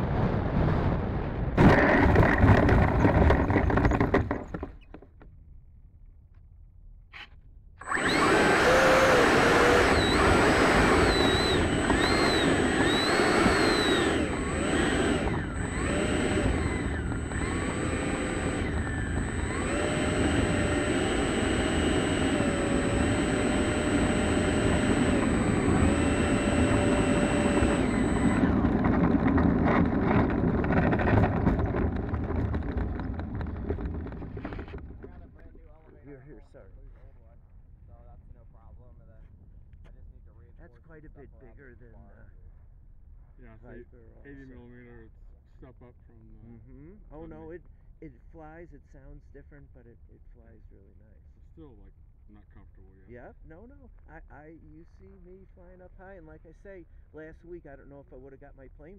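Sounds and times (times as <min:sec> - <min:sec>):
electric ducted fan whine: 0:07.8 - 0:58.9.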